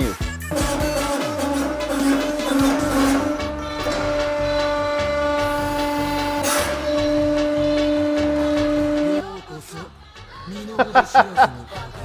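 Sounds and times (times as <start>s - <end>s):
background music with a beat: 0.0s - 12.0s
hydraulic press whining: 0.5s - 9.4s.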